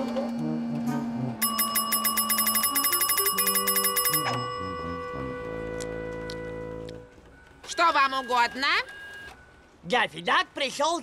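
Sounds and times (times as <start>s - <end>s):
background music: 0.0s - 7.6s
desk bell rung rapidly: 1.4s - 5.4s.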